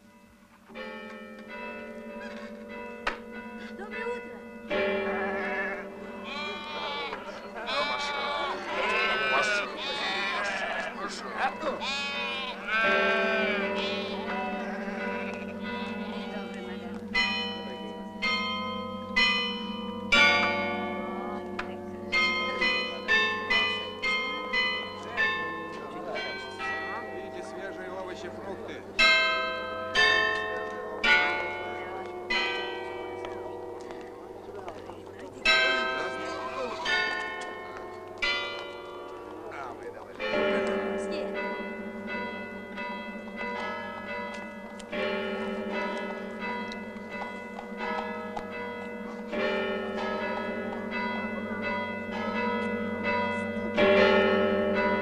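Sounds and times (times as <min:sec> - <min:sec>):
church bells ringing: 0:00.0 - 0:55.0
sheep bleating: 0:05.1 - 0:17.0.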